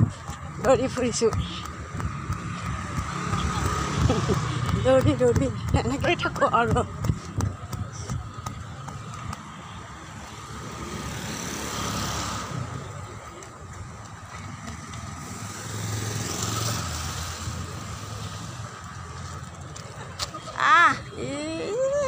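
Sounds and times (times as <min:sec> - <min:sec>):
road traffic rumble: 0:00.0 - 0:22.0.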